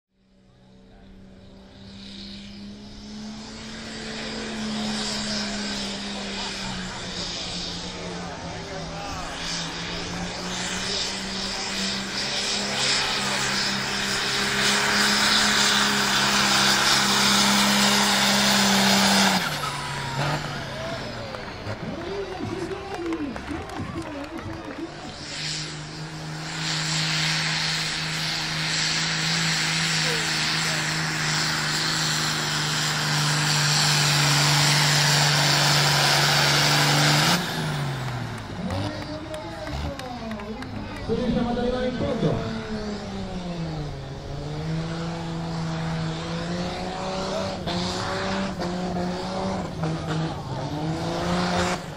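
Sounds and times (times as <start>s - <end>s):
diesel tractor engine at high revs: 0.2s - 51.9s.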